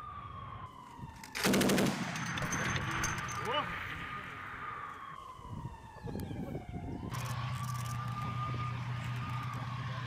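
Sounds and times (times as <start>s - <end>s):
low engine hum: 5.7s - 10.0s
tank engine whining: 7.0s - 10.0s.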